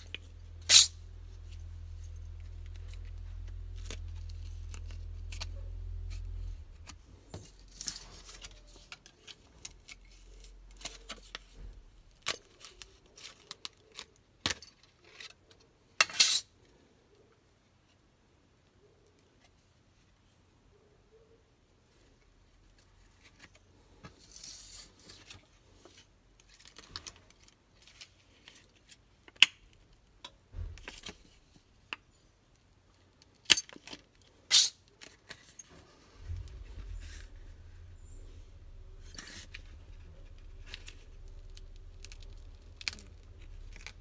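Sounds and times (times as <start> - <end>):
low steady hum: 0.0 - 13.4, 29.6 - 32.3, 35.3 - 44.0.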